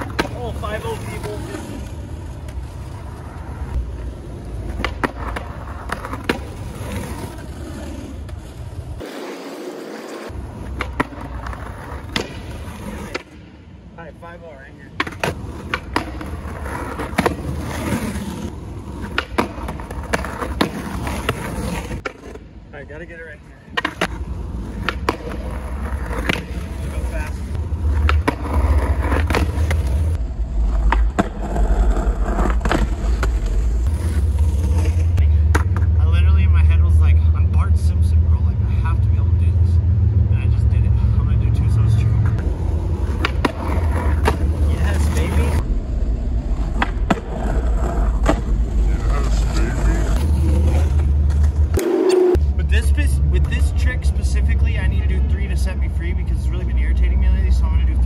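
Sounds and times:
skateboard clacking on ground: 0.0 - 3.0, 3.8 - 8.5, 10.2 - 13.4, 14.9 - 22.4, 23.7 - 36.0, 42.3 - 45.6, 46.5 - 52.4
skateboard wheels rolling: 0.0 - 37.2, 42.0 - 58.0
low rumble: 29.9 - 43.1, 44.5 - 53.4.

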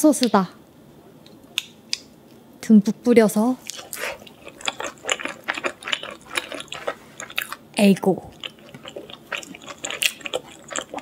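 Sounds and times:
person chewing food: 3.6 - 7.6, 8.3 - 11.0.

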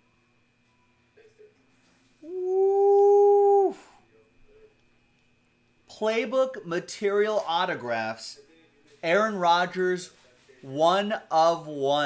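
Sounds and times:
man shouting woo: 2.2 - 4.0.

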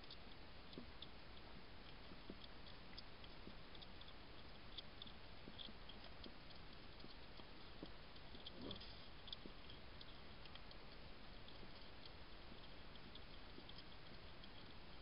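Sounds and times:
steady hiss: 0.0 - 15.0
hedgehog chewing clicks: 0.1 - 15.0.

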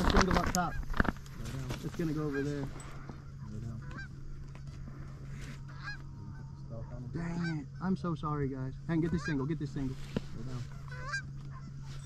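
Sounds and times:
geese honking: 0.0 - 12.0
steady low hum: 0.0 - 12.0.

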